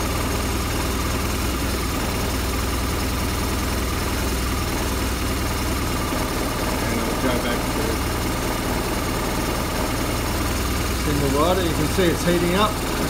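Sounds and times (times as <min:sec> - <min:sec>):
motorcycle engine idling: 0:00.0 - 0:13.0.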